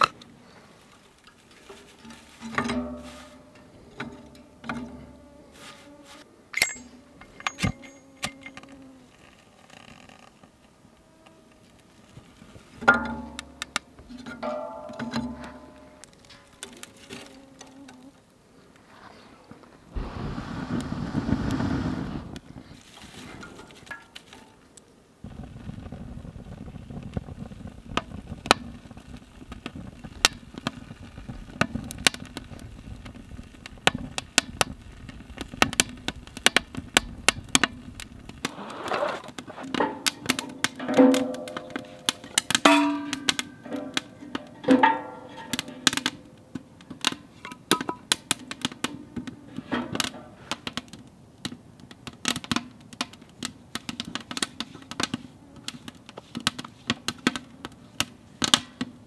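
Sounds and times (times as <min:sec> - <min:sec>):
fire crackling and popping: 0:00.0 - 0:05.4, 0:06.4 - 0:59.0
loud rushing sound: 0:20.0 - 0:22.4.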